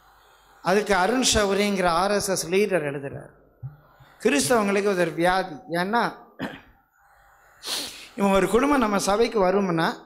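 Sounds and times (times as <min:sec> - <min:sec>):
man coughing into a microphone: 0:06.4 - 0:06.8.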